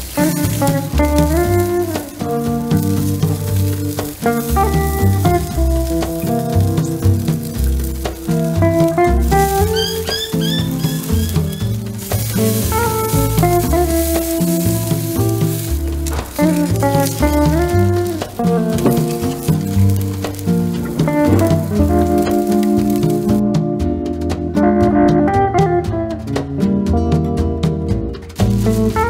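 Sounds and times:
steak sizzling on a grill: 0.0s - 23.4s, 28.4s - 29.0s
background music: 0.0s - 29.0s.

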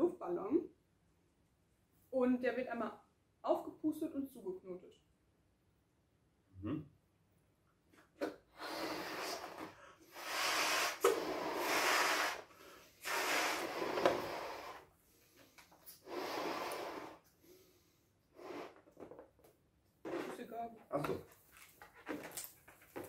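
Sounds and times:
balloon rubber rubbing: 8.5s - 14.9s
breathy blows into balloons: 8.5s - 18.9s.

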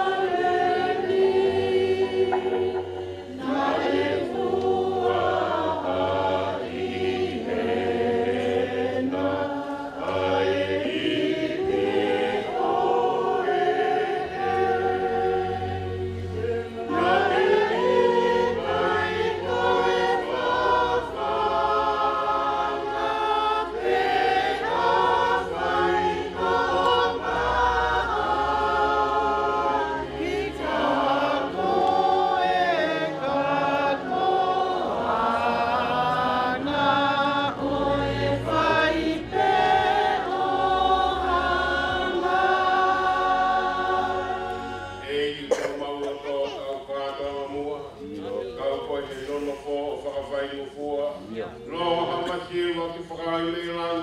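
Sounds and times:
group singing in parts: 0.0s - 54.0s.

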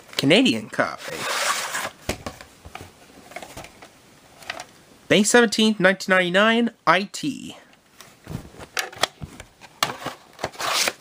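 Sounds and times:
cassette sliding out of cardboard: 9.9s - 11.0s.

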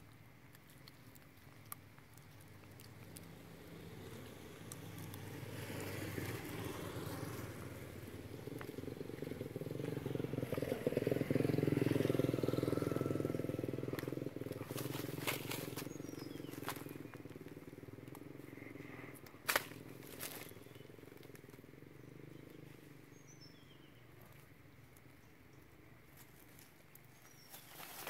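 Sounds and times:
vehicle engine passing by: 2.7s - 24.1s.

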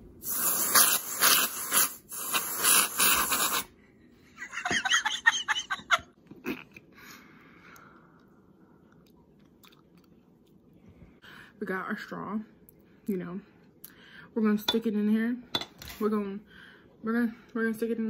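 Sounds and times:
aerosol whipped cream spraying: 0.2s - 3.7s.

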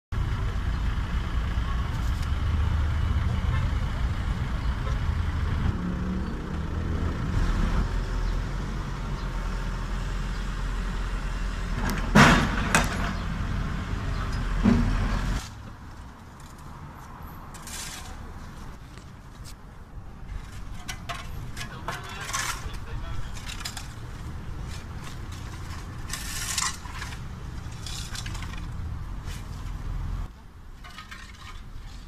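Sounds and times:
diesel engine running: 0.2s - 15.4s.

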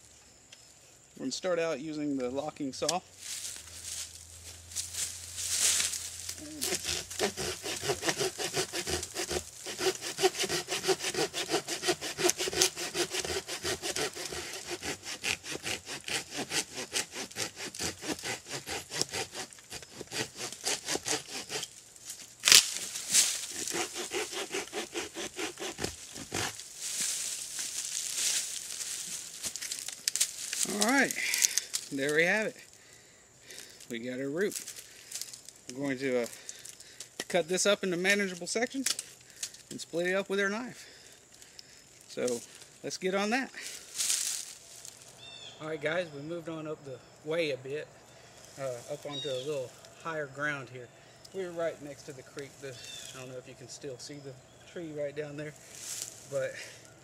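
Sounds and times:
hand saw cutting wood: 6.4s - 21.8s, 22.8s - 27.2s.

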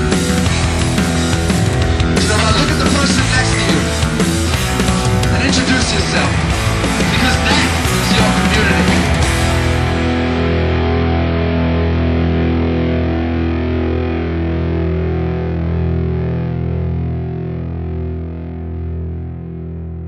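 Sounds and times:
rock band playing: 0.0s - 19.8s
distorted electric guitar chord ringing: 0.0s - 20.0s.

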